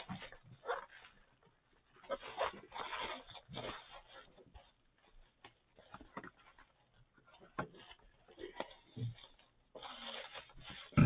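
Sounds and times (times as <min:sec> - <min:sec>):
bubble wrap crinkling: 0:00.0 - 0:11.0.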